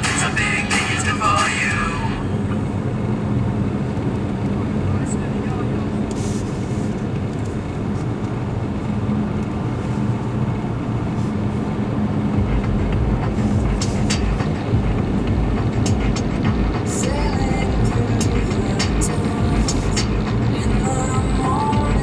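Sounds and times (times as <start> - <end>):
car interior road and engine noise: 0.0 - 22.0.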